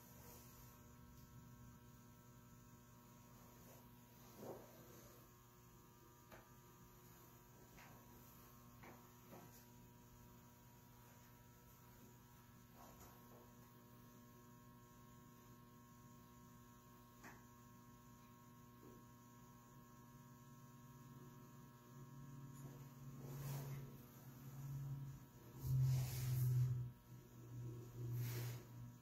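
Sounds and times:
electrical mains hum: 0:00.0 - 0:29.0.

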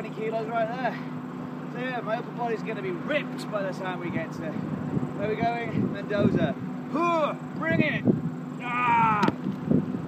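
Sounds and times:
man yelling: 0:06.9 - 0:08.0, 0:08.6 - 0:09.4.

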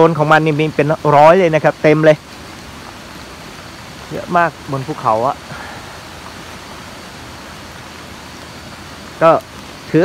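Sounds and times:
outdoor background hiss: 0:00.0 - 0:10.0
man speaking: 0:04.1 - 0:05.8, 0:09.2 - 0:10.0.

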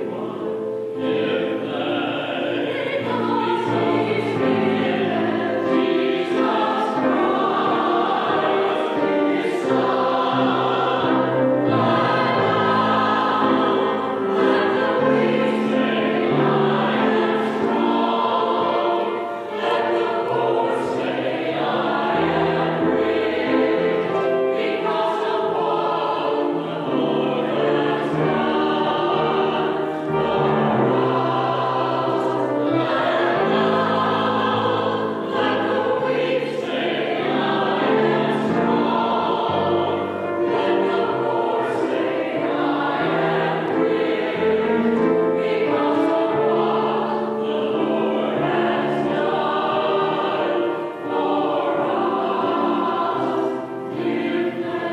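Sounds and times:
choir singing in harmony: 0:00.0 - 0:54.9.

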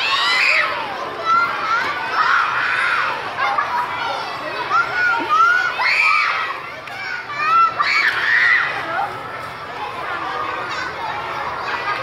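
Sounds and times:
young children shouting: 0:00.0 - 0:12.0.

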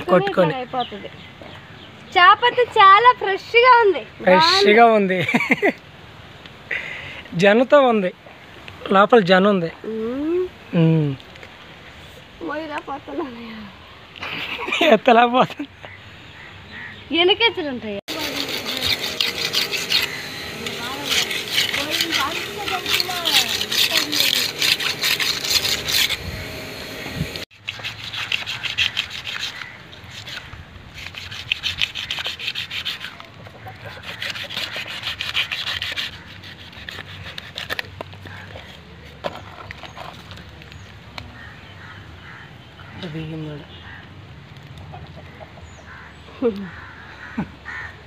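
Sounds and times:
voices and calls: 0:15.4 - 0:27.4, 0:28.0 - 0:48.0
knife scraping fish scales: 0:18.1 - 0:40.4.

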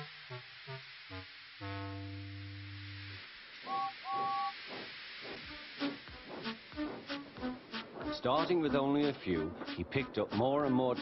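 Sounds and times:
steam locomotive whistle: 0:03.6 - 0:04.7
steam engine chuffing: 0:03.6 - 0:11.0.

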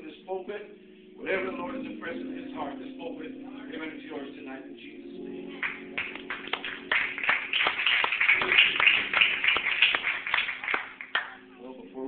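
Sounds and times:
congregation clapping: 0:05.5 - 0:11.5.

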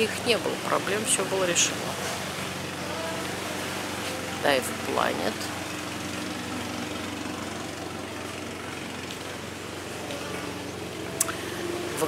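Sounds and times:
motor humming: 0:00.0 - 0:12.0.

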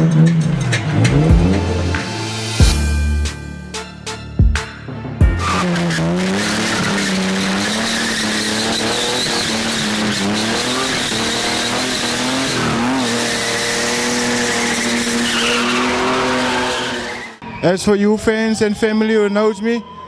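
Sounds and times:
car engine at high revs: 0:00.0 - 0:02.1, 0:05.4 - 0:17.4
tyre screech: 0:05.3 - 0:17.8.

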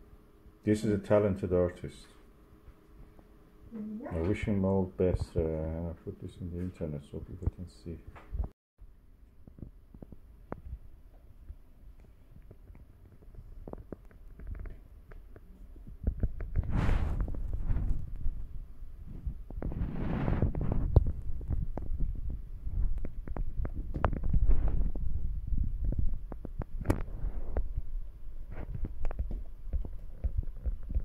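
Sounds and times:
small knocks and clicks: 0:12.0 - 0:16.6.

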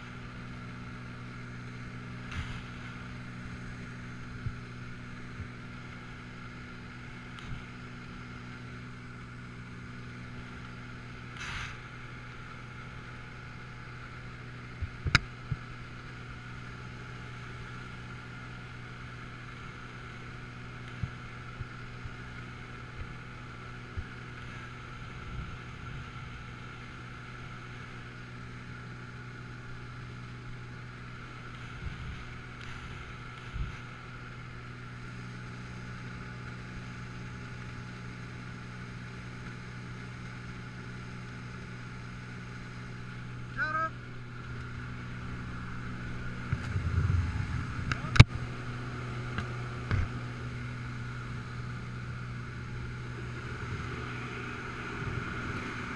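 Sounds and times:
aircraft engine and propeller droning: 0:00.0 - 0:55.9.

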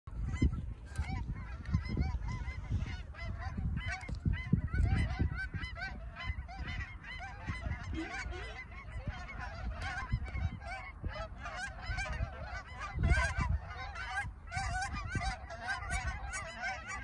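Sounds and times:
geese honking: 0:00.1 - 0:17.0
wind buffeting microphone: 0:00.1 - 0:17.0.

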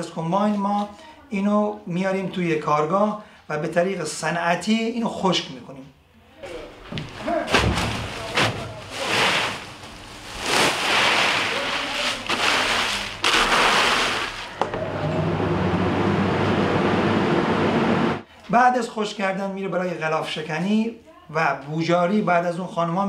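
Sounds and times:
steady machine hum: 0:08.9 - 0:18.2.

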